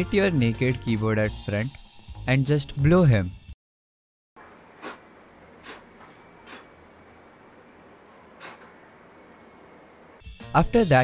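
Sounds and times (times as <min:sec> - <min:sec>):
puffs of breath blown: 0:05.6 - 0:06.8, 0:08.4 - 0:08.7.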